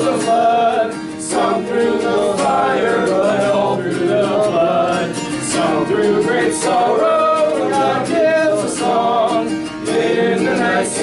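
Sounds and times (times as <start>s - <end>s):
acoustic guitar: 0.0s - 11.0s
congregation singing a hymn: 0.0s - 11.0s.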